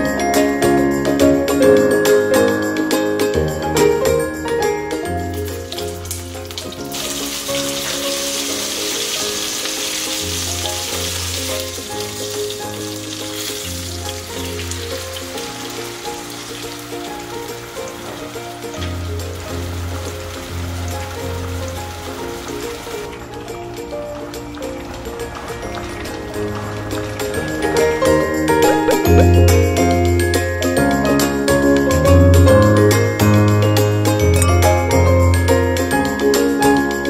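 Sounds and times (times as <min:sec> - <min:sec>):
background music: 0:00.0 - 0:37.0
food sizzling in hot oil: 0:05.2 - 0:23.8.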